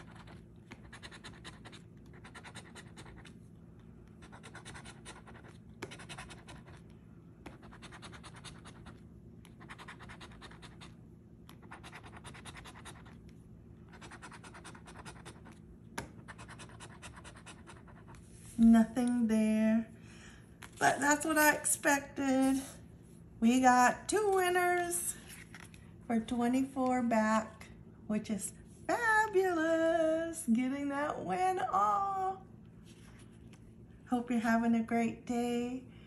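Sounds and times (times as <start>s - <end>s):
coin scratching lottery ticket: 11.6s - 13.2s.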